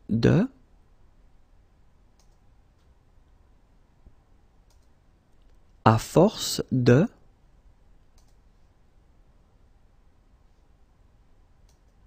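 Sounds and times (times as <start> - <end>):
faint clicks: 2.1 - 2.9, 4.6 - 5.6, 8.0 - 8.4, 11.6 - 12.0.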